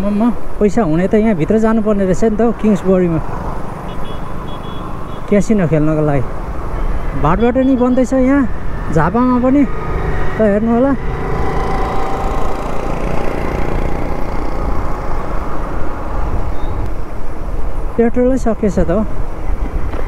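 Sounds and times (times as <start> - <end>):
man speaking: 0.0 - 3.4, 5.3 - 6.3, 7.1 - 11.0, 18.0 - 19.1
motorcycle engine rumble: 0.0 - 18.0
wind noise: 0.0 - 20.0.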